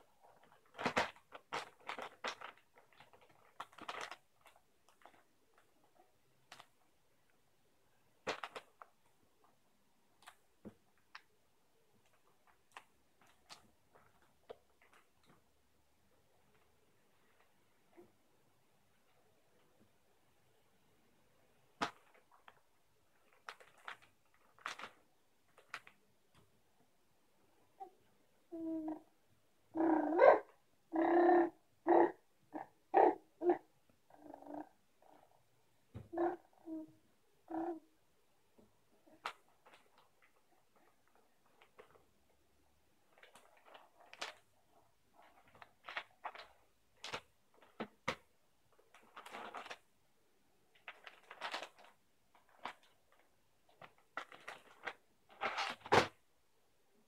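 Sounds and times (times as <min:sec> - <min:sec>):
plastic packet crinkling: 0:00.3 - 0:05.2, 0:21.8 - 0:26.0, 0:48.9 - 0:49.8, 0:50.8 - 0:55.9.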